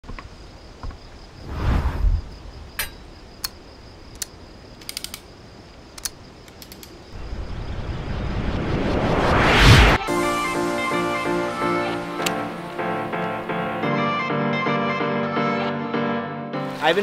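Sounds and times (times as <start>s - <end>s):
rising whoosh: 1.4s - 2.4s, 7.2s - 11.6s
soft whoosh with low thuds: 1.4s - 2.8s, 7.2s - 10.0s
sharp metallic tripod clicks: 2.8s - 5.3s, 6.0s - 7.0s.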